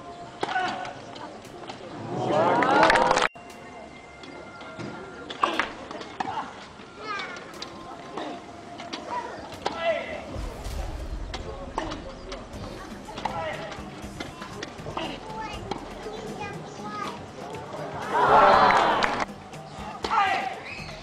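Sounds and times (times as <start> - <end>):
spectators chatter: 0.0 - 21.0
children's voices: 6.9 - 19.2.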